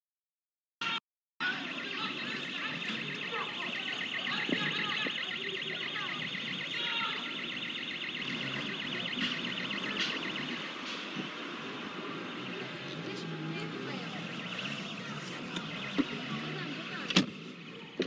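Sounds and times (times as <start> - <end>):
street noise: 0.8 - 18.0
voices: 0.8 - 18.0
alarm ringing: 0.9 - 17.1.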